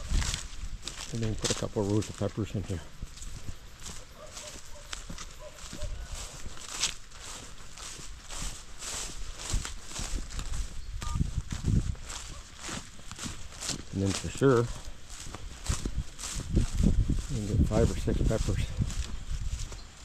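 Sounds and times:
footsteps on grass and soil: 0.0s - 20.0s.

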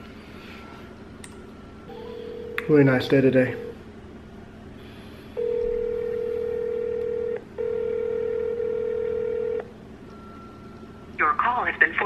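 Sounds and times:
telephone ringing tone: 1.9s - 3.8s, 5.4s - 11.0s.

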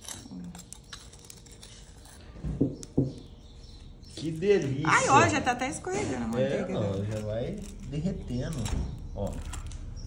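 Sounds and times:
knife scraping butter: 0.0s - 2.9s, 6.1s - 9.7s.

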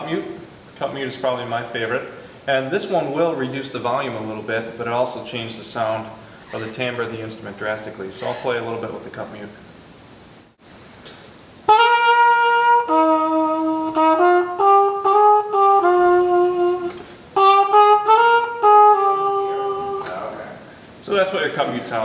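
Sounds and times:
muted trumpet melody: 11.6s - 20.1s.

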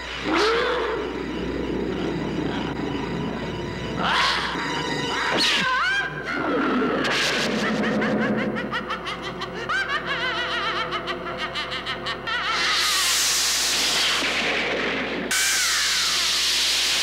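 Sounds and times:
falling whine: 0.0s - 11.4s, 12.2s - 17.0s
high wavering cackling laugh: 5.5s - 13.6s.

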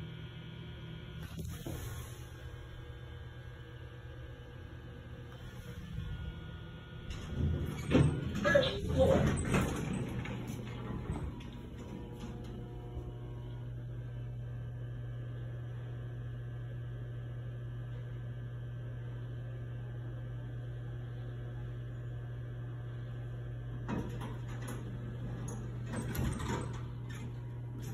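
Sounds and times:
low electrical hum: 0.0s - 27.9s
elevator doors sliding shut: 5.3s - 13.2s, 23.8s - 27.9s.

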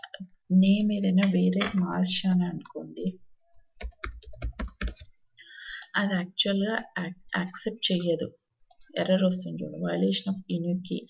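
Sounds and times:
typing on a keyboard: 3.8s - 5.1s.

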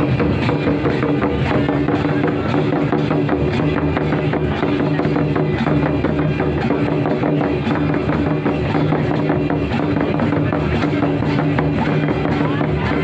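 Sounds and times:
hand drums beating fast rhythm: 0.0s - 13.0s.

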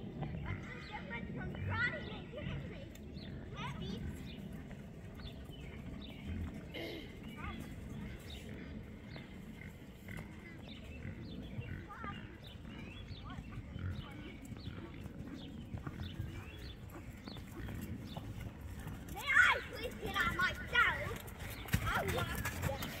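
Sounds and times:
faint voices: 0.0s - 23.0s
voices close to microphone: 0.0s - 23.0s.

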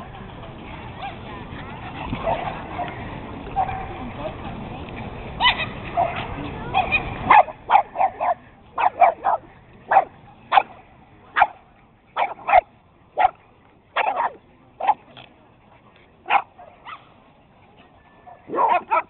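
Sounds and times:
dogs barking and yipping: 5.4s - 10.7s, 12.2s - 13.4s, 14.0s - 15.0s, 16.3s - 17.1s, 18.3s - 19.0s.

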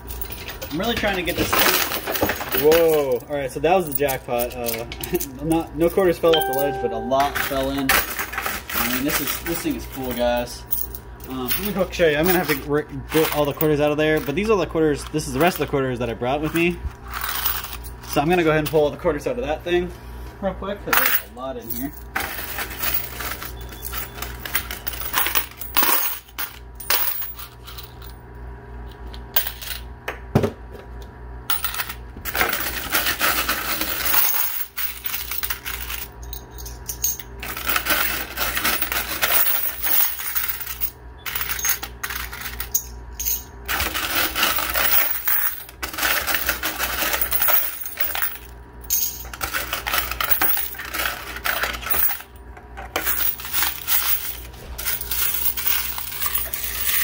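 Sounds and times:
steady low hum: 0.0s - 57.0s
coins clinking and jingling: 6.3s - 14.3s, 17.1s - 18.2s, 21.0s - 28.1s, 31.5s - 52.3s, 53.0s - 57.0s.

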